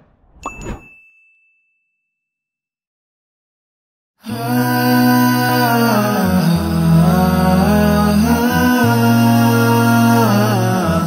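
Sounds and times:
bell-like ding: 0.4 - 2.2.

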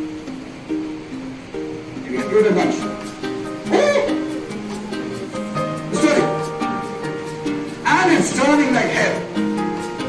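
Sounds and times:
plucked string music: 0.0 - 10.0.

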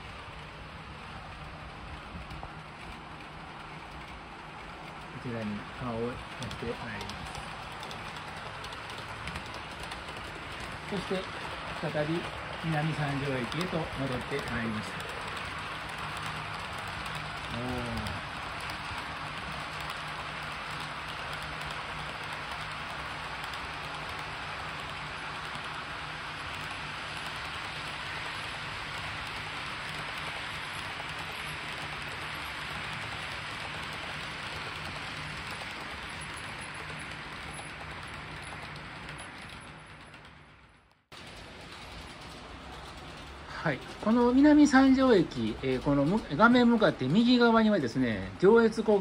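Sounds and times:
model train wheels on rail: 0.0 - 49.0.

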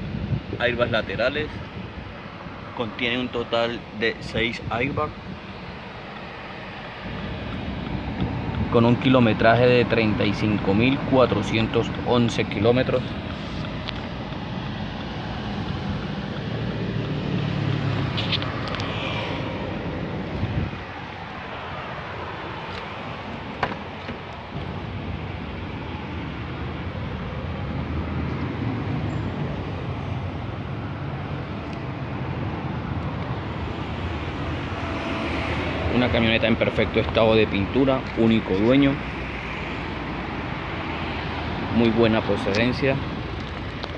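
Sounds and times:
car engine idling: 1.7 - 43.9.

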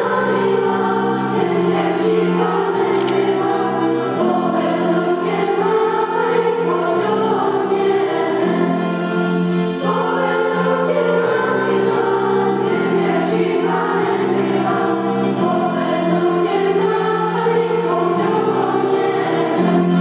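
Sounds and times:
choir singing sustained chords: 0.0 - 20.0.

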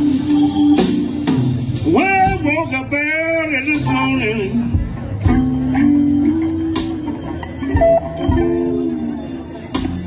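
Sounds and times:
drums: 0.0 - 10.0
electric bass: 0.0 - 10.0
electric guitar lead: 0.0 - 10.0
hammond organ: 0.0 - 10.0.

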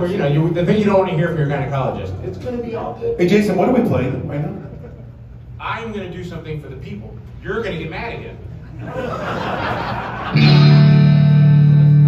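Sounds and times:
electric guitar chord ringing: 10.3 - 12.0.

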